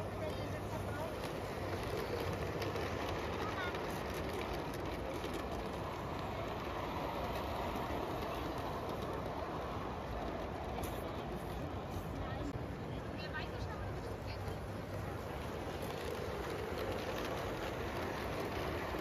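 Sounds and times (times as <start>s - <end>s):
indistinct chatter of people: 0.0s - 19.0s
model train rolling on track: 0.0s - 19.0s.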